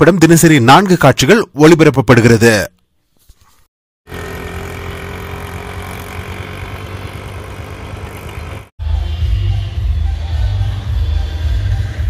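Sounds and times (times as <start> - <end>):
vehicle engine rumbling: 4.1 - 8.7.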